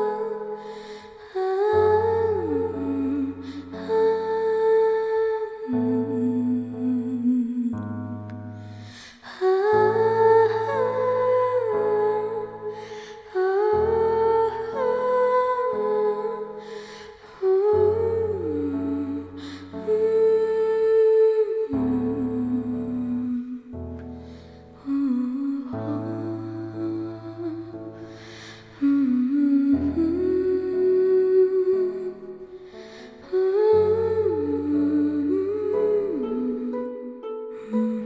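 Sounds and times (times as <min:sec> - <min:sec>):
hummed melody: 0:00.0 - 0:38.0.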